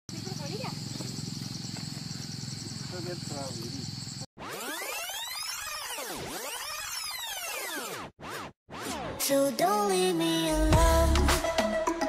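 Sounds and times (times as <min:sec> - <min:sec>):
insects chirping: 0:00.1 - 0:04.3.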